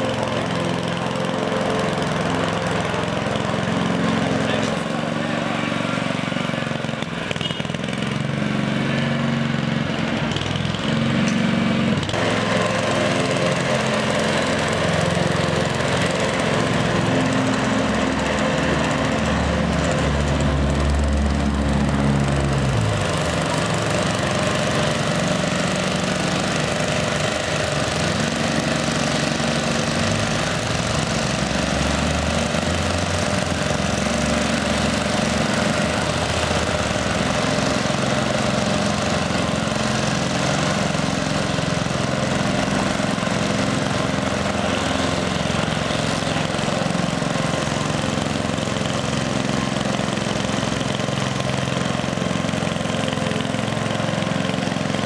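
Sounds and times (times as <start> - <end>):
lawn mower engine running: 0.0 - 55.0.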